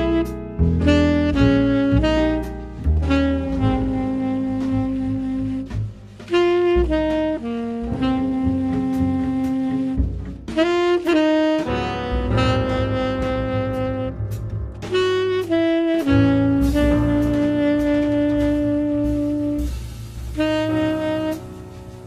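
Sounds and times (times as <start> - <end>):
low bass notes: 0.0 - 22.0
piano: 0.0 - 22.0
tenor saxophone melody: 0.0 - 22.0.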